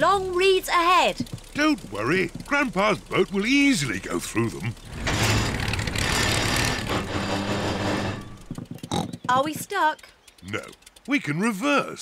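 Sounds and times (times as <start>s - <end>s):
cartoon motor boat engine: 0.0s - 12.0s.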